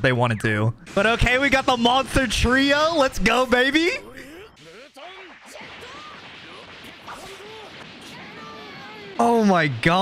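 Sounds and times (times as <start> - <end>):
people shouting: 4.6 - 9.4.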